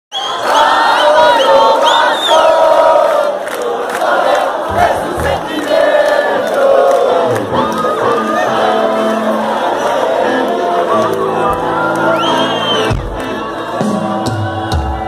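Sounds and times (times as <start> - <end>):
crowd shouting and cheering: 0.1 - 15.0
low thumps: 4.7 - 6.0.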